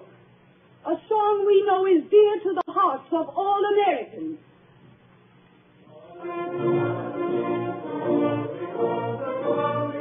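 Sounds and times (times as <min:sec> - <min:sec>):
orchestra with brass playing chords: 0:06.0 - 0:10.0.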